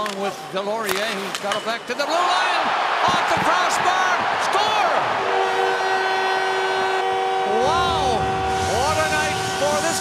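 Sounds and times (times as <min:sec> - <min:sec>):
crowd cheering: 0:02.0 - 0:09.9
goal horn chord: 0:05.2 - 0:10.0.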